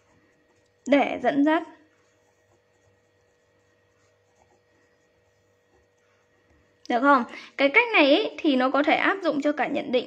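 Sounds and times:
steady hum: 0.0s - 10.0s
pen scratching on paper: 1.8s - 6.6s.

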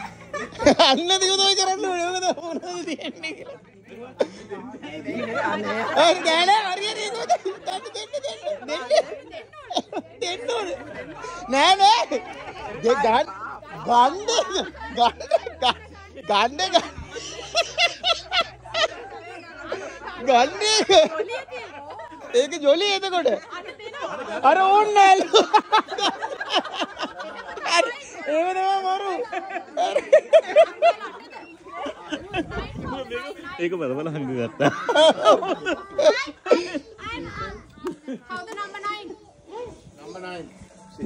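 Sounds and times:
people talking: 0.0s - 41.0s
children's voices: 29.0s - 33.5s, 34.5s - 39.9s.

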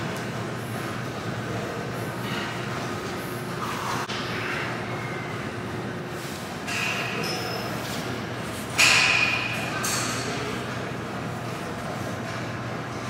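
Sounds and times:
gym background rumble: 0.0s - 13.0s.

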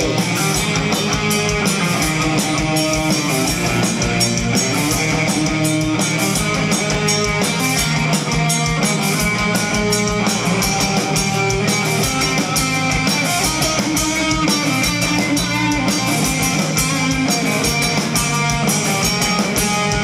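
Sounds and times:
drum kit: 0.0s - 20.0s
electric guitar: 0.0s - 20.0s.

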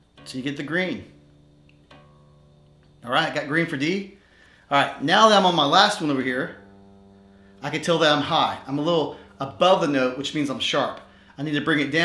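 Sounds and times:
bass guitar string ringing: 0.0s - 12.0s.

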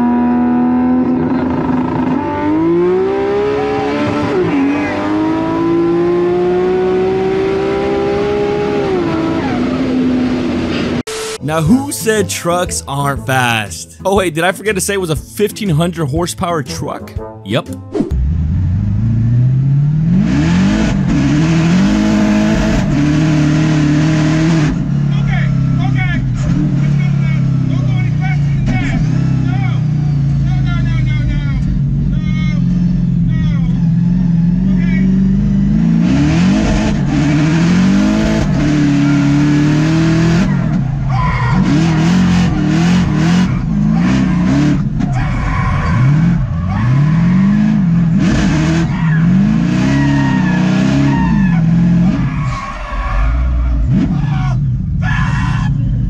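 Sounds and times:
truck engine revving: 0.0s - 11.4s, 18.1s - 55.1s
passenger shouting: 38.6s - 47.8s, 48.8s - 56.0s.

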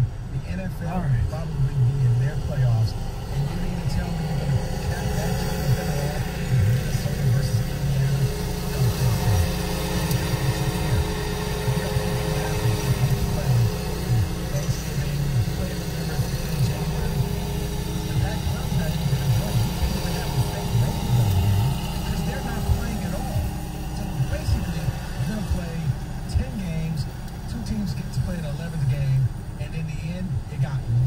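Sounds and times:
car idling hum: 0.0s - 31.0s
muffled talk radio voices: 0.0s - 31.0s.

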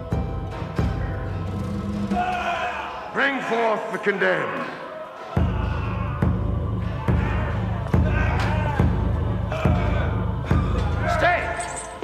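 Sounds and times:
voices: 1.0s - 12.0s
large drum beats: 5.4s - 11.2s.

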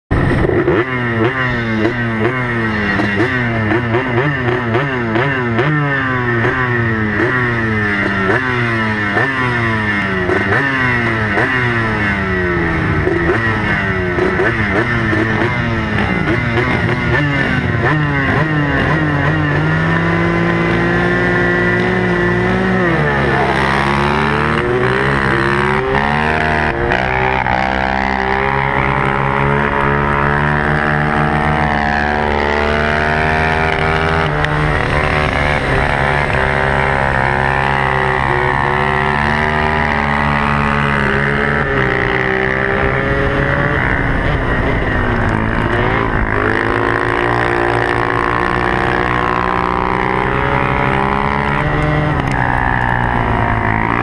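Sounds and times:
atv engine revving: 0.1s - 54.0s
other quad engines: 0.1s - 54.0s.

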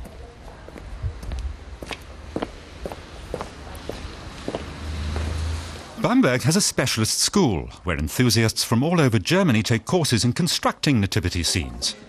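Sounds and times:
footsteps on pavement: 0.0s - 5.4s.

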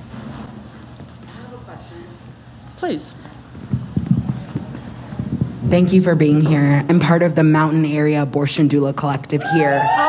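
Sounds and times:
microphone handling knocks: 3.5s - 5.9s.

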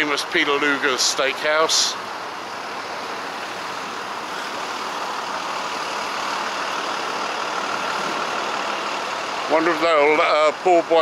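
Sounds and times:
motor vehicles passing: 0.0s - 11.0s.

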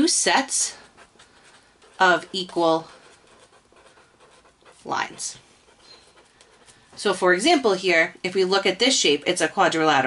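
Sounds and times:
marker scratching on paper: 0.0s - 7.6s.

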